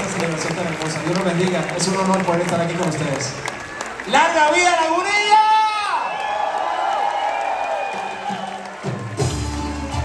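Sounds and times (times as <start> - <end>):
crowd cheering: 0.0 - 10.0
band music with heavy bass beat: 8.8 - 10.0.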